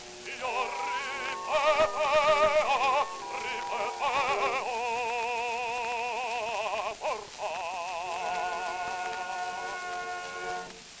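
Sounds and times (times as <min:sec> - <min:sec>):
disc surface hiss: 0:00.0 - 0:11.0
bass voice singing opera: 0:00.2 - 0:10.4
orchestral chord: 0:00.4 - 0:04.8.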